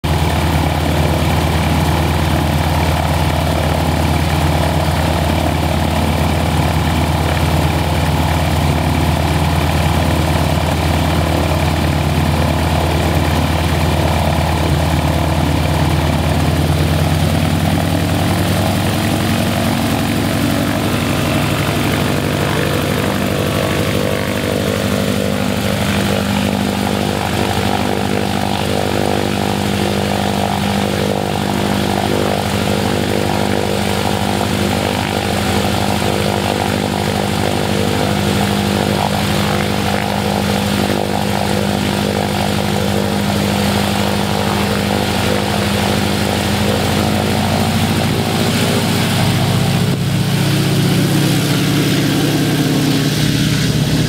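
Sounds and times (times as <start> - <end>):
propeller plane engine idling: 0.0 - 54.0.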